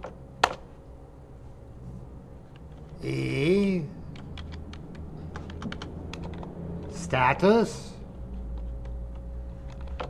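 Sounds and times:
keyboard typing: 4.0s - 7.0s, 8.0s - 10.0s.

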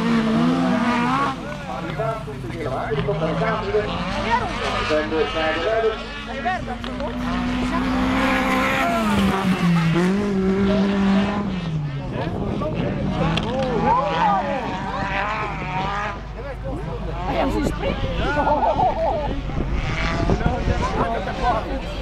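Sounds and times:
race car engines: 0.0s - 22.0s.

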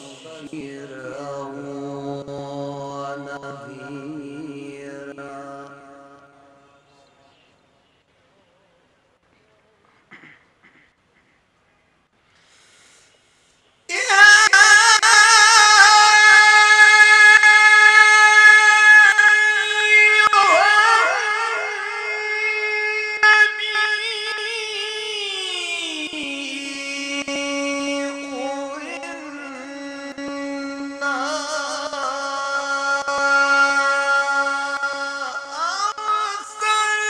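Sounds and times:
man chanting melodic recitation: 0.0s - 7.4s, 13.8s - 37.0s.

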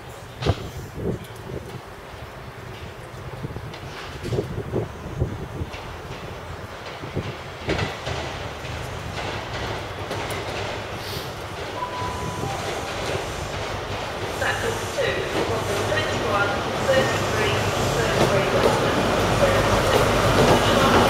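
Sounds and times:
diesel train engine drone: 0.0s - 21.0s
rail noise: 0.0s - 21.0s.

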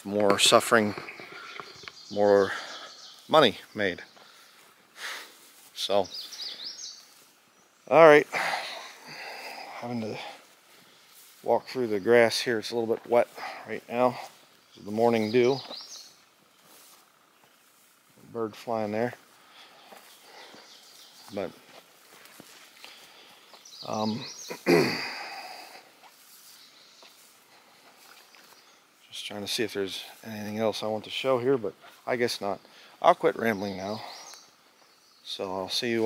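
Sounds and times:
footsteps through wet grass: 0.0s - 33.5s.

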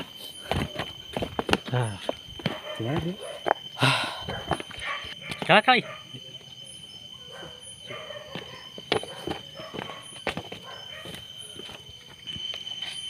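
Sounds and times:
high-pitched insect trill: 0.0s - 13.0s
footsteps on a path: 0.4s - 3.7s, 8.2s - 13.0s.

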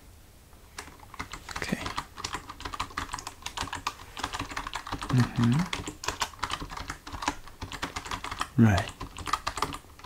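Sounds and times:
typing on computer keyboard: 0.8s - 10.0s.

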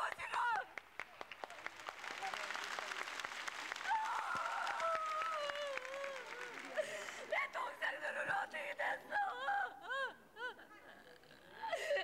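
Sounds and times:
audience applause: 0.3s - 7.4s
woman wailing and sobbing: 9.0s - 12.0s.

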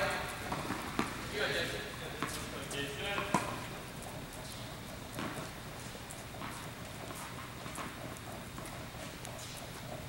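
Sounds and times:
steady low hum: 0.0s - 10.0s
faint taps on tennis court: 0.4s - 1.2s, 2.1s - 3.7s, 4.4s - 9.6s.

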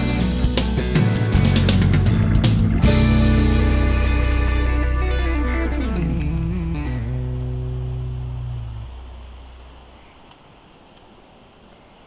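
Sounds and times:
guitar chord ringing out: 0.0s - 9.9s
faint background hiss: 2.8s - 12.0s.

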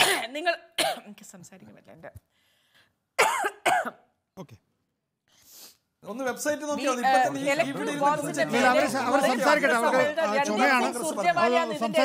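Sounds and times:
woman coughing: 0.0s - 1.2s, 3.2s - 4.1s.

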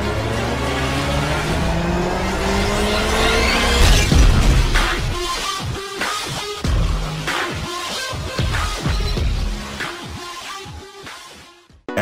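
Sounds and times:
car engine revving: 0.0s - 5.3s
music: 3.0s - 12.0s.

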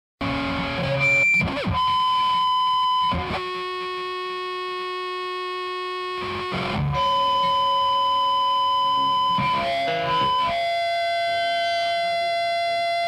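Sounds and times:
distorted electric guitar: 0.2s - 13.0s.

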